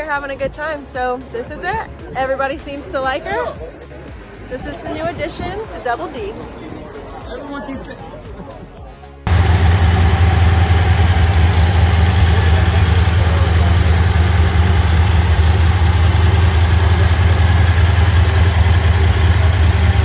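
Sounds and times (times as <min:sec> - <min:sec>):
truck engine idling: 0:09.2 - 0:20.0.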